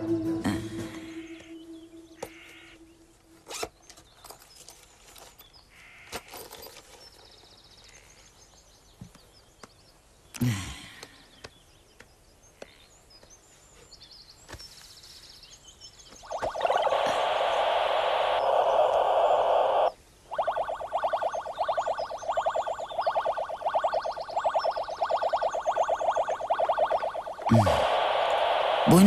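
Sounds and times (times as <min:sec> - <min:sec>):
electronic buzzing tone: 0:16.3 - 0:29.0
fast repeated beeps: 0:16.3 - 0:29.0.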